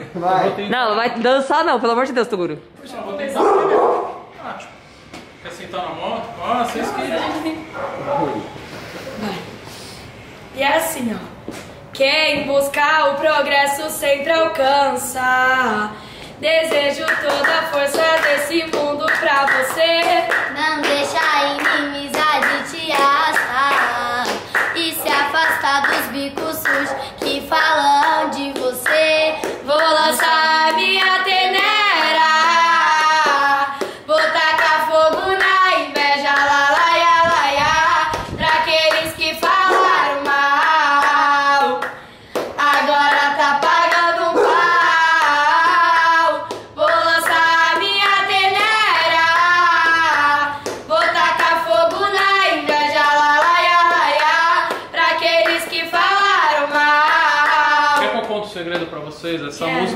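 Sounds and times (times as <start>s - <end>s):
girls singing unaccompanied: 12.0s - 58.2s
hand claps: 16.6s - 30.9s, 38.1s - 44.1s, 44.8s - 48.8s, 49.4s - 56.1s, 56.7s - 58.9s.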